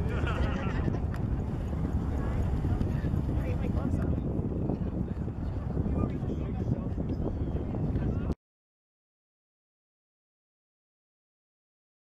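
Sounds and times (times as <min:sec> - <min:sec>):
wind buffeting microphone: 0:00.0 - 0:08.4
faint voices of people: 0:01.8 - 0:08.4.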